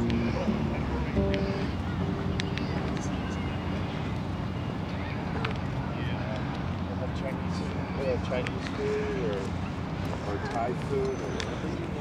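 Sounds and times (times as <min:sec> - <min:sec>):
distant traffic rumble: 0:00.0 - 0:12.0
faint voices of passers-by: 0:00.0 - 0:12.0.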